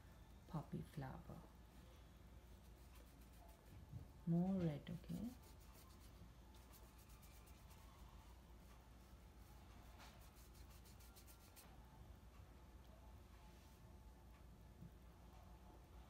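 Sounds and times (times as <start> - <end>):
faint room hum: 0.0 - 16.0
paintbrush scratching on paper: 2.5 - 11.8.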